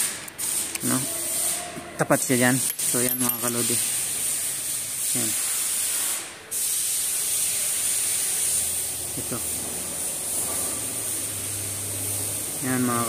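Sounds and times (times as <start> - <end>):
steady hiss: 2.2 - 13.0.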